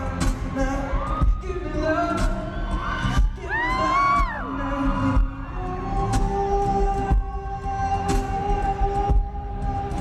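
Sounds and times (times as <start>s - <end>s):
man singing into microphone: 0.0s - 10.0s
pop music with pulsing bass: 0.0s - 10.0s.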